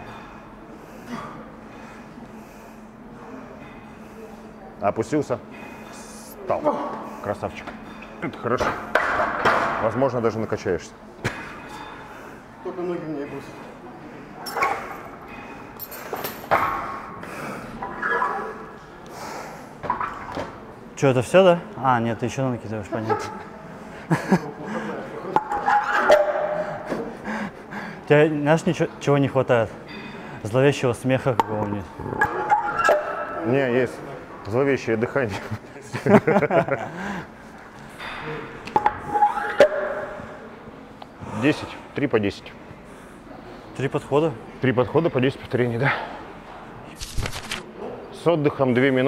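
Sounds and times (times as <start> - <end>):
man breathing hard: 19.0 - 19.8, 26.6 - 28.1, 36.9 - 37.4
weight plates clanking: 32.2 - 33.6.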